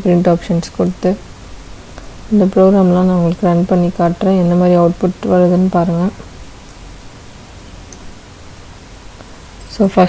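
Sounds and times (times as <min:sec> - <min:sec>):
person speaking: 0:00.0 - 0:01.2, 0:02.3 - 0:06.3, 0:09.6 - 0:10.0
background hiss: 0:00.0 - 0:10.0.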